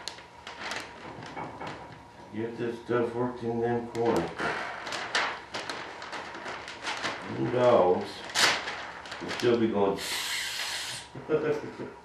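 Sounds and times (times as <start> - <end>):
plastic film crinkling: 0.0 - 2.4, 3.9 - 10.8.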